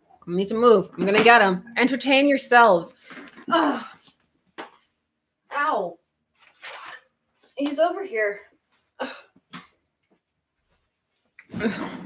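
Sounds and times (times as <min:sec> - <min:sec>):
woman grunting: 0:03.5 - 0:04.0.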